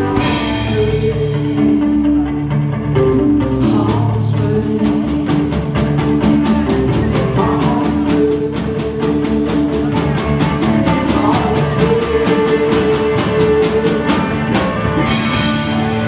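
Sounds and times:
bass guitar: 0.0s - 16.0s
drum kit beat: 0.0s - 16.0s
electric guitar: 0.0s - 16.0s
person singing: 0.0s - 16.0s.

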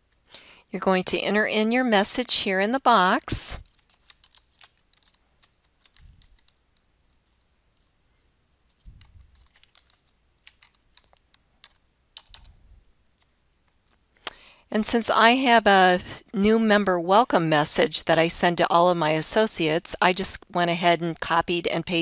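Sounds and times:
typing on computer keyboard: 3.6s - 6.8s, 8.7s - 12.5s.

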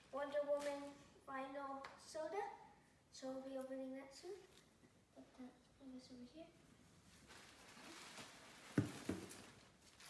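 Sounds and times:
bubble wrap and cardboard rustling: 0.0s - 1.0s, 7.0s - 10.0s.

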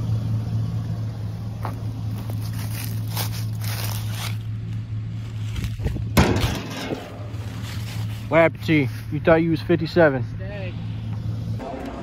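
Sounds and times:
low engine hum: 0.0s - 12.0s
footsteps scuffing on asphalt: 1.5s - 6.0s, 7.2s - 8.3s.

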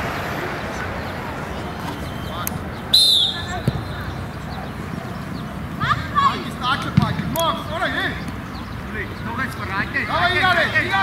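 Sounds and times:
children shouting and calling: 3.3s - 7.0s.

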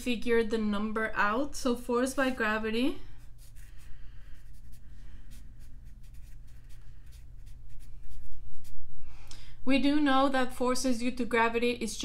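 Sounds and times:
low electrical hum: 0.0s - 12.0s
marker scratching on paper: 3.2s - 8.8s.

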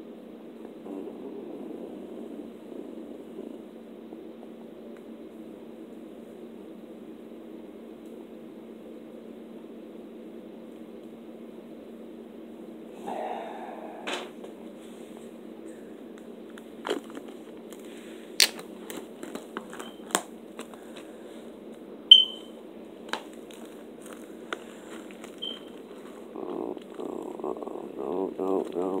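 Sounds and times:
steady low hum: 0.0s - 29.0s
plastic wrapping crackling: 16.5s - 21.1s, 23.1s - 27.1s.

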